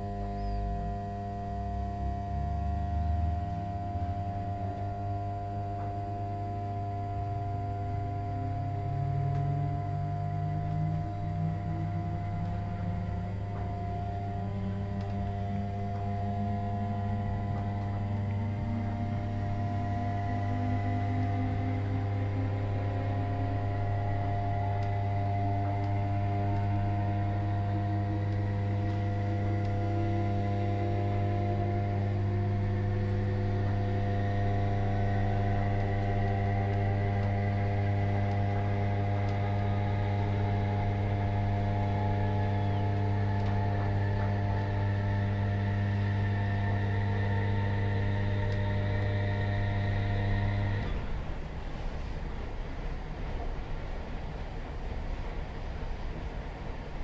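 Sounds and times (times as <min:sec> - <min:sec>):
rising electric whine: 0:00.0 - 0:57.0
train electrical hum: 0:00.0 - 0:57.0.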